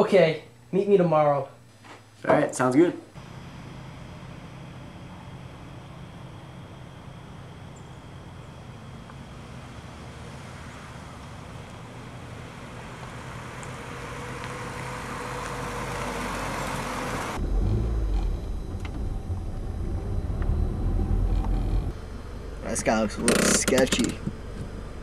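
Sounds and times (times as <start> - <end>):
car engine and tyre noise: 3.2 - 25.0
low rumble inside car cabin: 17.4 - 25.0.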